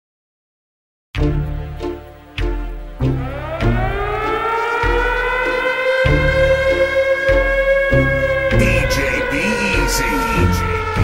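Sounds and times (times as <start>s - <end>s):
siren tone sweeping up: 3.2s - 11.0s.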